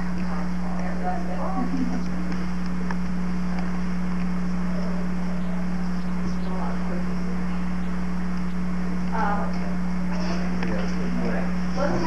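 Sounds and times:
low electrical hum: 0.0 - 12.0
people murmuring: 0.0 - 12.0.

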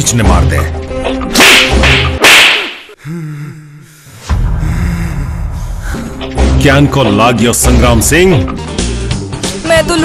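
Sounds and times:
whip-like slap crack: 1.4 - 2.8.

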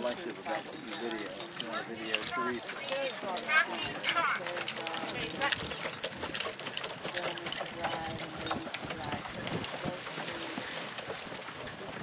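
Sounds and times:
people talking: 0.0 - 5.9, 7.1 - 10.8
horse hoofbeats: 0.0 - 12.0.

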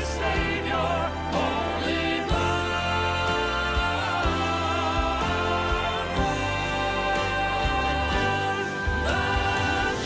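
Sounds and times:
keyboard and band accompaniment: 0.0 - 10.0
vocal quartet singing: 0.0 - 10.0.

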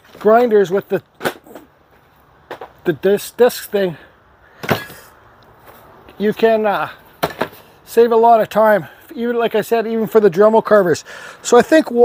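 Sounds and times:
man speaking: 0.2 - 1.6, 2.8 - 4.2, 6.1 - 7.1, 7.8 - 12.0.

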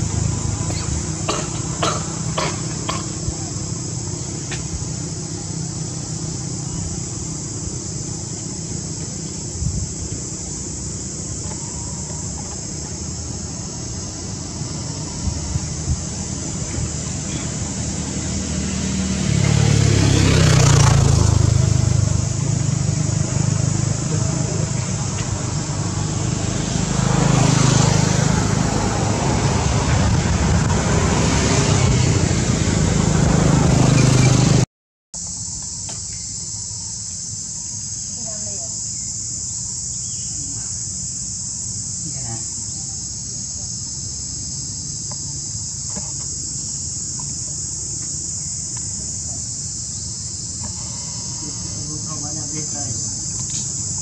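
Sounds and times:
high-pitched insect drone: 0.0 - 34.6, 35.2 - 54.0
passing motor vehicles rumble: 0.0 - 54.0.

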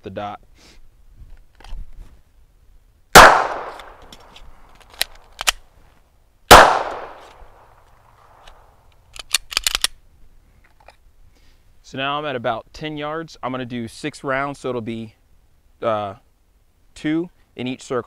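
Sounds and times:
pistol shots with echo: 3.2 - 4.0, 6.5 - 7.6
magazine reload clicks: 3.2 - 5.6, 6.5 - 10.0
quick run of gun clicks: 3.7 - 5.6, 8.4 - 10.0.

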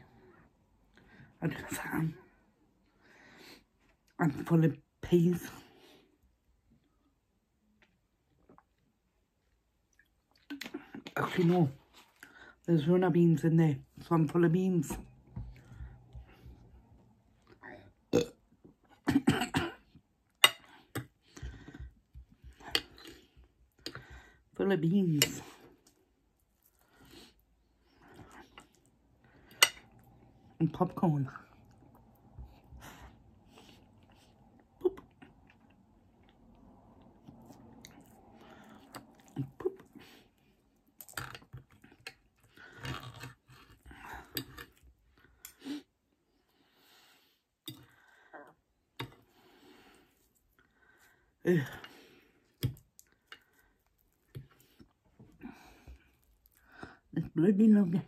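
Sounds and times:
person burping: 17.6 - 19.9
person chewing food: 25.7 - 30.6, 31.5 - 45.6, 52.2 - 56.9.

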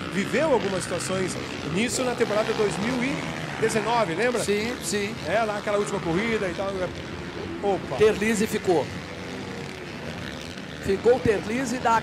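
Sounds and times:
distant motorbike engines droning: 0.0 - 12.0.

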